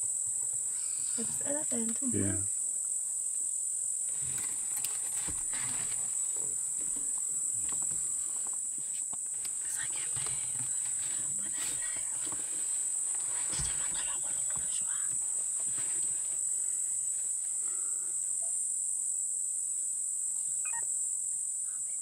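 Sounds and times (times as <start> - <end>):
insects droning: 0.0 - 22.0.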